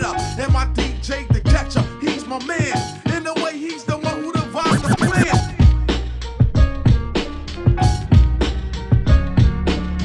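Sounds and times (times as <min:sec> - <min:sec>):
turntable scratching: 0:04.7 - 0:05.4
hip hop drum beat: 0:04.7 - 0:05.6.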